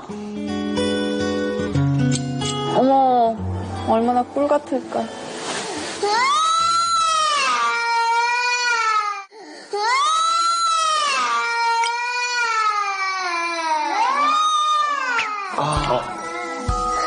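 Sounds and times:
baby crying: 6.0 - 17.0.

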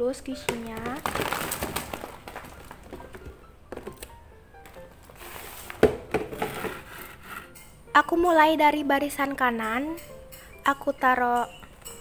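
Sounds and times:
quiet background music: 0.0 - 12.0
paper rustling and crinkling: 0.7 - 4.0, 4.7 - 7.2.

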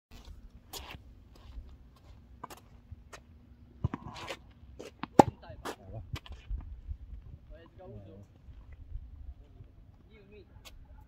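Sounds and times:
footsteps on asphalt: 0.1 - 7.6.

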